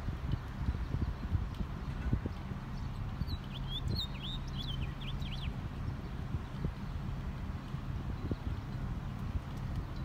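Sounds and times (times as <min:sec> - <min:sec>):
small bird chirping: 0:02.4 - 0:05.6.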